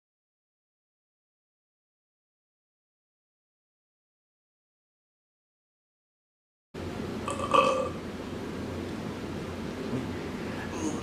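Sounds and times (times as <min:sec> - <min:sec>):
faint room hum: 0:06.8 - 0:11.0.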